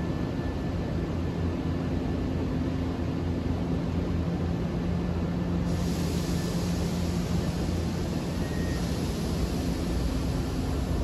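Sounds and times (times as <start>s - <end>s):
railway station rumble and hum: 0.0s - 11.0s.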